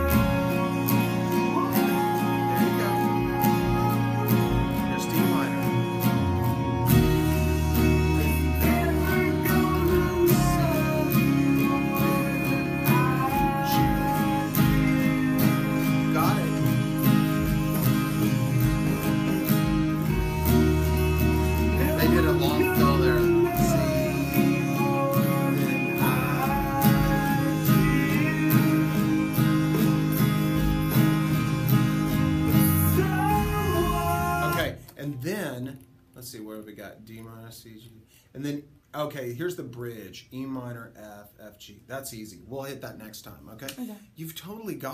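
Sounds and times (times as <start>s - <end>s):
man singing: 0.0s - 35.3s
acoustic guitar strumming: 0.0s - 37.6s.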